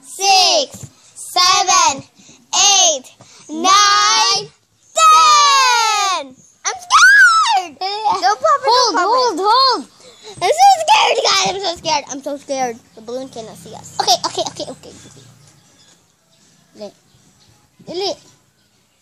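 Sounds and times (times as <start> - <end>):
girls squealing: 6.7 - 7.7
girls babbling and chattering: 7.6 - 15.4.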